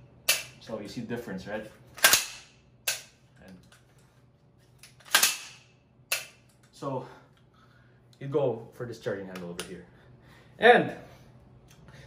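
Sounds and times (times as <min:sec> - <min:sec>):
sharp metallic clack: 0:00.2 - 0:00.6, 0:02.0 - 0:03.2, 0:04.8 - 0:06.5.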